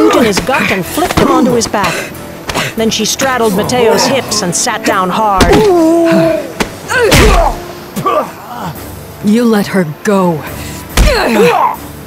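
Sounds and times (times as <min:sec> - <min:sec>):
pained grunt: 0:05.5 - 0:08.8, 0:11.0 - 0:11.8.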